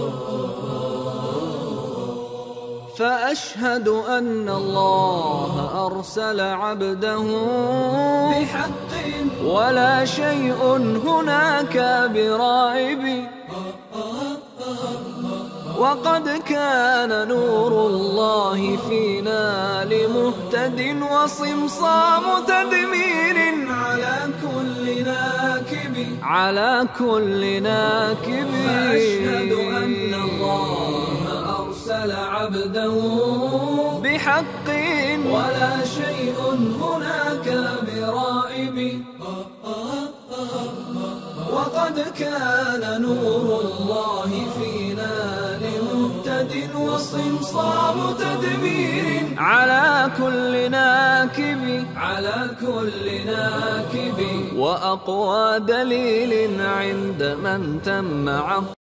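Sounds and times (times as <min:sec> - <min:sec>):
unaccompanied vocal chanting: 0:00.0 - 0:58.8.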